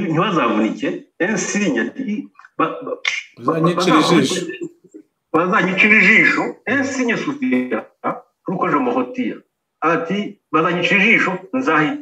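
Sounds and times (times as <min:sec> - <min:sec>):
man speaking: 0:03.4 - 0:04.7.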